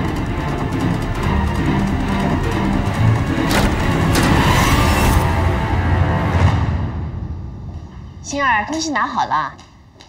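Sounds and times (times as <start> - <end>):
dramatic background music: 0.0 - 8.9
door creaking: 3.2 - 5.4.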